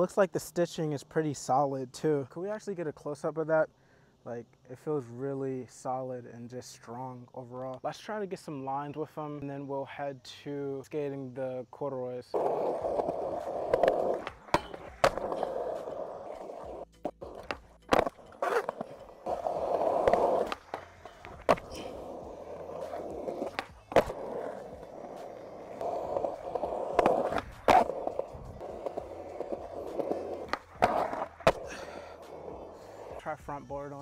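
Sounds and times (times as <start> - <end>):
skateboard wheels rolling on concrete: 10.9 - 34.0
skateboard popping and landing clacks: 12.4 - 31.8.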